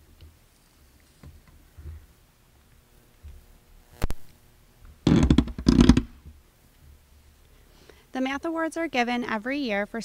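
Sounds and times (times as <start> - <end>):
microphone handling bumps: 5.0 - 6.4.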